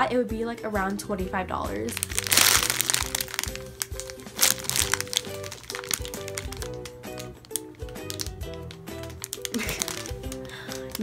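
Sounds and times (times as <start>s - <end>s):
background music: 0.0s - 11.0s
plastic bag crinkling: 1.8s - 11.0s.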